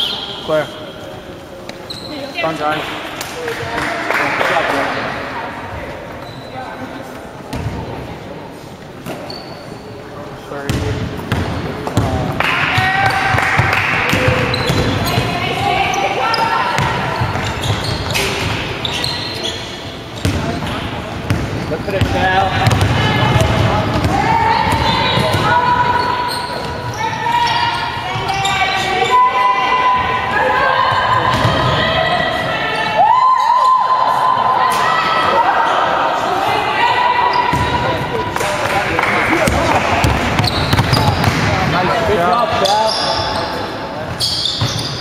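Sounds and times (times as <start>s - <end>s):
basketball bouncing: 10.7s - 15.3s, 20.2s - 20.6s, 21.2s - 25.5s, 37.5s - 37.8s, 39.4s - 41.7s.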